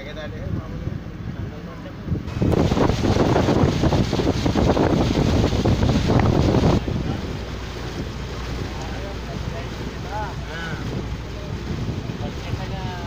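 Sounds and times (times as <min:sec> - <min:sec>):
wind buffeting microphone: 0:00.1 - 0:13.0.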